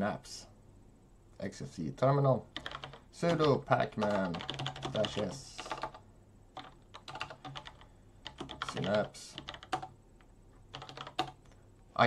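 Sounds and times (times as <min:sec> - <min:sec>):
keyboard typing: 0:02.5 - 0:06.0, 0:06.6 - 0:11.6.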